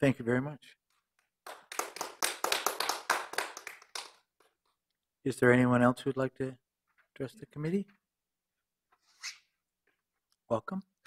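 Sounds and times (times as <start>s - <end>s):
audience applauding: 1.4s - 4.2s.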